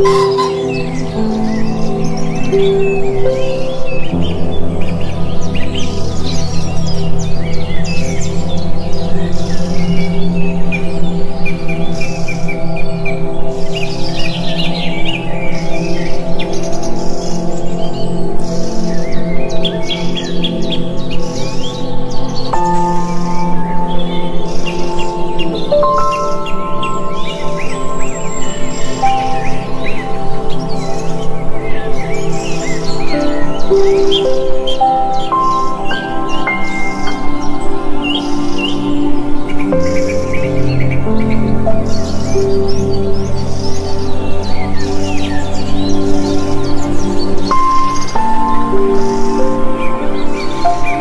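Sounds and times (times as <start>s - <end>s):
birds chirping and calling: 0.0s - 51.0s
slow ambient music: 0.0s - 51.0s.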